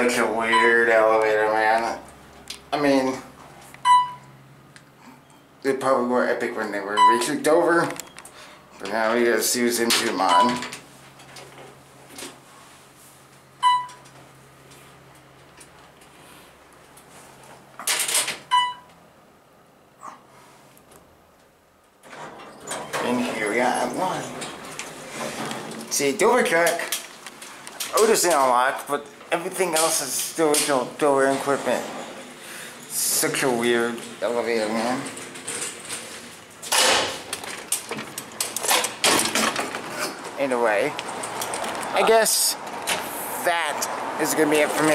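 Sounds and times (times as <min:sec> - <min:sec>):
elevator humming: 0:21.9 - 0:26.7, 0:27.4 - 0:42.9
glass door pushed open: 0:22.0 - 0:25.9, 0:34.1 - 0:40.4
door hardware clicks: 0:36.6 - 0:39.9.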